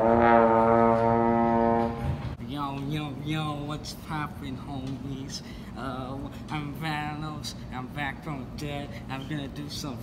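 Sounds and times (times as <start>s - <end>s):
slide trombone long note: 0.0s - 2.4s.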